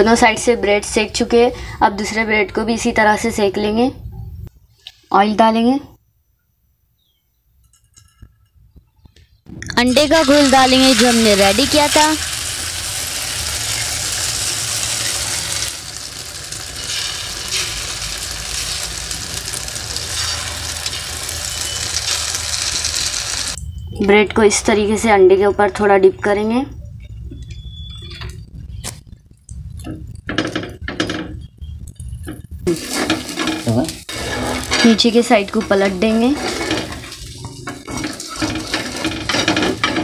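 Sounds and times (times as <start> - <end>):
batter sizzling in hot oil: 9.8 - 23.6, 32.6 - 40.0
spatula scraping: 16.8 - 23.5, 32.0 - 40.0
low hum: 19.1 - 32.7.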